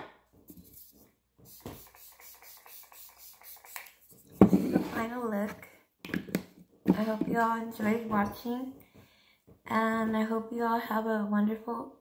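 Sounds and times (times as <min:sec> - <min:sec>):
faint hissing spray: 0:00.6 - 0:04.2.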